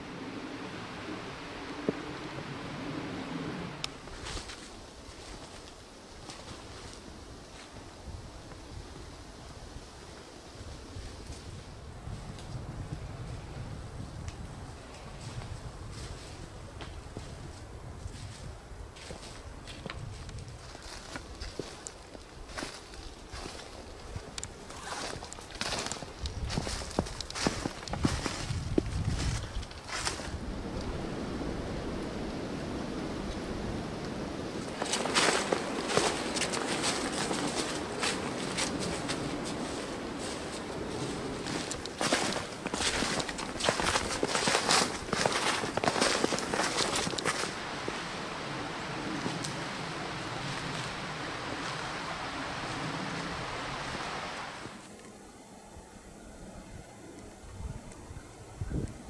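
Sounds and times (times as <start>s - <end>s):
flowing creek rushing: 0.0s - 5.1s, 29.9s - 54.9s
footsteps crunching in snow: 4.0s - 7.8s, 14.9s - 31.2s, 34.5s - 55.0s.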